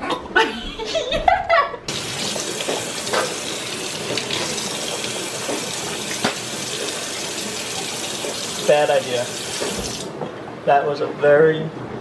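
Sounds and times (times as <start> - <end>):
people laughing: 0.3 - 1.9.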